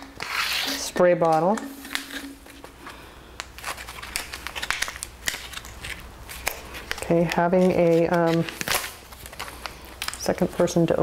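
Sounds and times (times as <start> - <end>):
foil pouch crinkling: 0.1 - 11.0.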